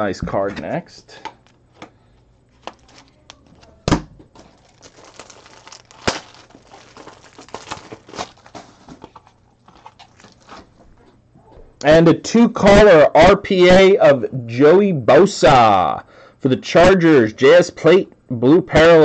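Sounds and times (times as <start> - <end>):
plastic wrapper crinkling: 2.5 - 10.8.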